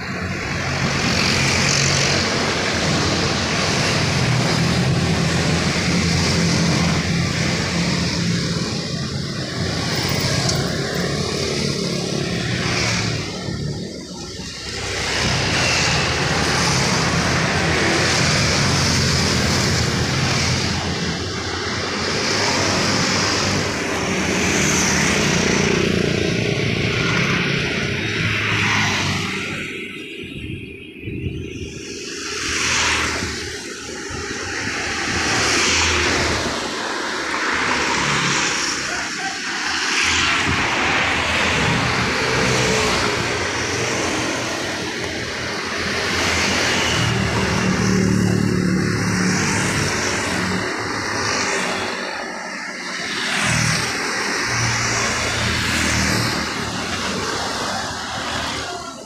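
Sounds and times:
car passing: 0:00.0 - 0:30.5, 0:31.6 - 0:59.0
motorcycles and scooters passing: 0:00.0 - 0:59.0.

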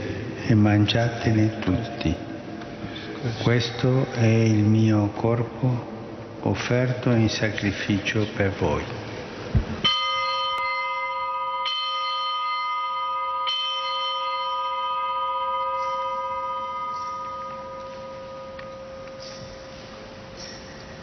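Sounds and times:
altar bell ringing: 0:09.8 - 0:21.0.

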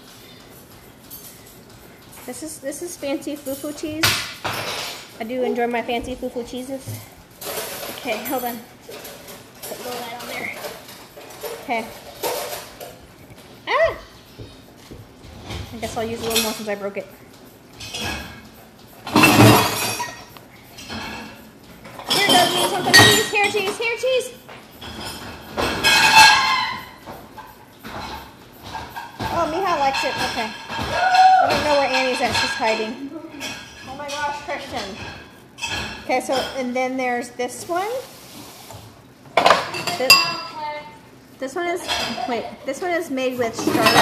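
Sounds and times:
kitchen utensils and dishes clinking: 0:00.6 - 0:13.2, 0:15.2 - 0:17.2, 0:17.8 - 0:36.9, 0:39.4 - 0:40.6, 0:41.5 - 0:44.0.

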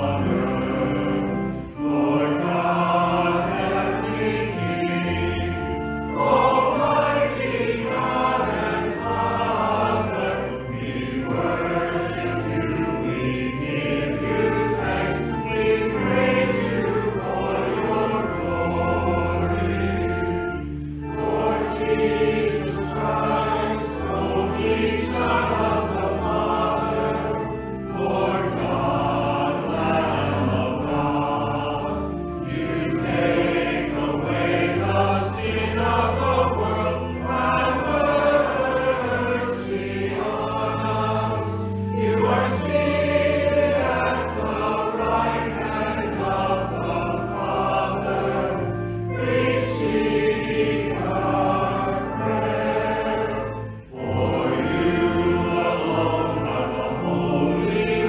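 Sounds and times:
choir and congregation singing a hymn: 0:00.0 - 0:58.0
instrumental accompaniment: 0:00.0 - 0:58.0.

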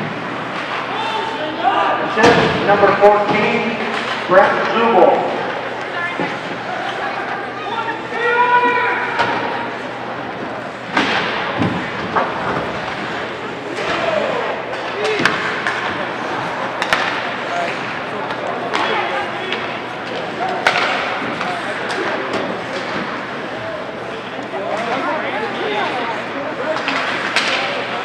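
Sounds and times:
hockey sticks and puck clacking: 0:00.0 - 0:01.2, 0:02.2 - 0:07.4, 0:10.9 - 0:23.3, 0:26.6 - 0:28.0
crowd chatter: 0:00.0 - 0:28.0
people shouting: 0:00.8 - 0:02.2, 0:06.0 - 0:09.7, 0:13.7 - 0:15.5.

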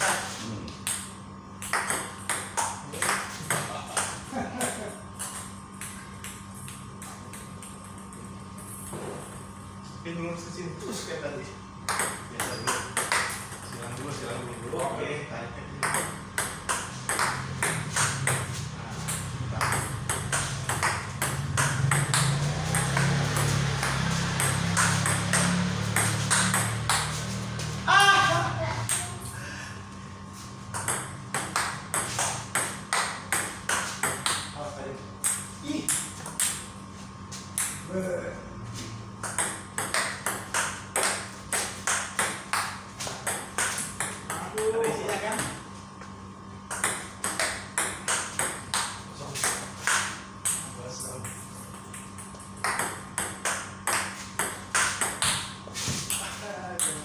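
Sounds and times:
ping-pong ball hits: 0:00.0 - 0:08.2, 0:11.8 - 0:14.0, 0:15.7 - 0:27.8, 0:28.8 - 0:29.3, 0:30.7 - 0:34.6, 0:35.2 - 0:36.7, 0:37.5 - 0:37.9, 0:39.2 - 0:45.6, 0:46.7 - 0:57.0.

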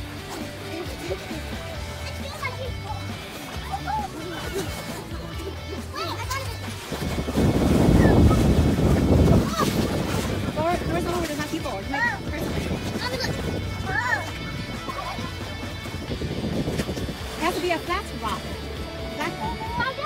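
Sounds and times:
background music: 0:00.0 - 0:20.0
splashing through shallow water: 0:00.0 - 0:20.0
child laughing: 0:00.5 - 0:06.6, 0:09.3 - 0:09.8, 0:13.0 - 0:15.6, 0:19.4 - 0:20.0
children's voices: 0:00.6 - 0:07.2, 0:07.8 - 0:10.0, 0:12.8 - 0:15.5, 0:19.3 - 0:20.0.

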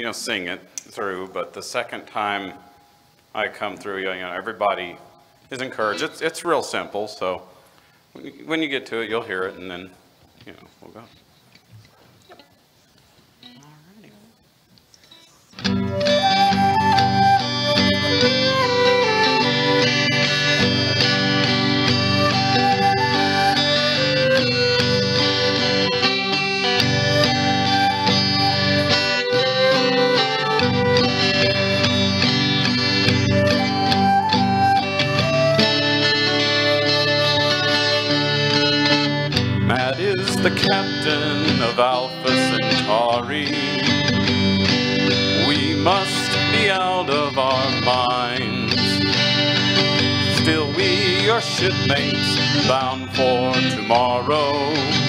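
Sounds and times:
flute melody: 0:15.6 - 0:52.8
strummed acoustic guitar: 0:15.6 - 0:55.0
man singing: 0:39.6 - 0:44.2, 0:45.3 - 0:55.0.

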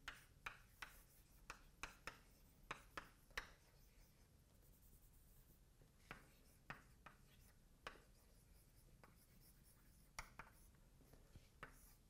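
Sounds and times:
chalk on blackboard: 0:00.0 - 0:12.0.

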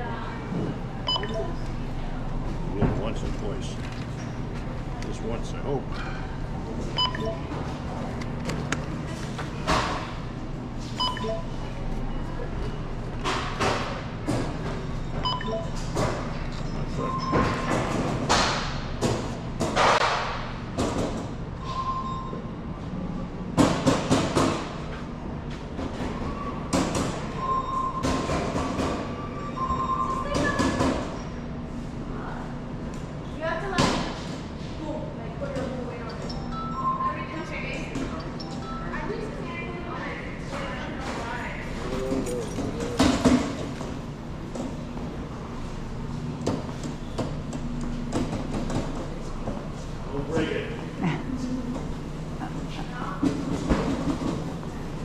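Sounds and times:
steady store hum: 0:00.0 - 0:55.0
barcode scanner beeps: 0:01.1 - 0:01.7, 0:07.0 - 0:07.6, 0:11.0 - 0:11.6, 0:15.2 - 0:15.9, 0:38.1 - 0:39.1.

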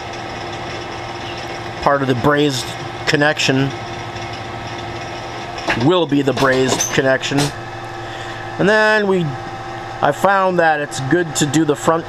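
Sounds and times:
lathe machine hum: 0:00.0 - 0:12.0.

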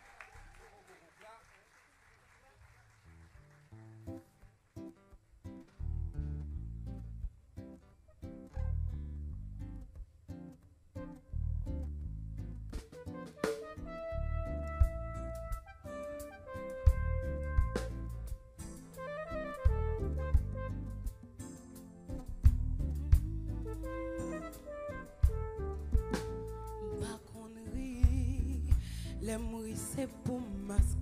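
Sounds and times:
guitar picking a rhythm: 0:03.4 - 0:31.0
electric bass: 0:05.7 - 0:07.5, 0:08.5 - 0:10.0, 0:11.2 - 0:12.8, 0:14.1 - 0:15.6, 0:16.9 - 0:18.5, 0:19.7 - 0:21.1, 0:22.2 - 0:27.1, 0:27.9 - 0:29.5
held melody notes: 0:23.1 - 0:27.3.

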